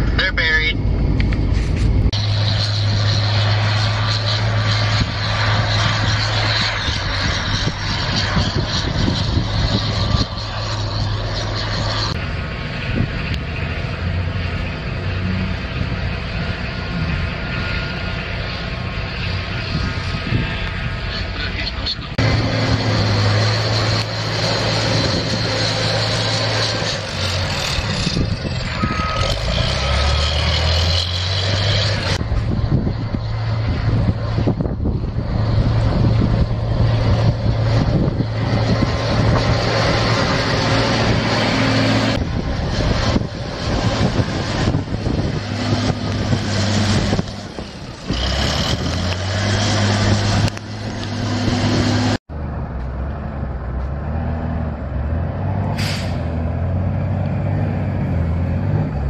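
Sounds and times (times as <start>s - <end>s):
wheel loader diesel engine running: 0.0s - 59.0s.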